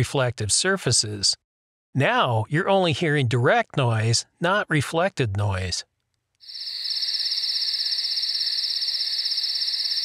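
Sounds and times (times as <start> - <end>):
crickets chirping: 6.4 - 10.0.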